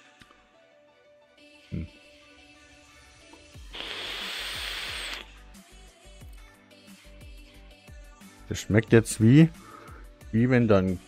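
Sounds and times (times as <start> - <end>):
background music: 0.0 - 11.0
e-cigarette hiss: 3.7 - 5.3.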